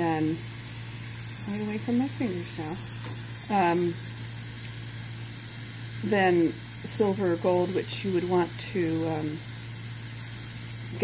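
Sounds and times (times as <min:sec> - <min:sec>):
gas torch flame hissing: 0:00.0 - 0:11.0.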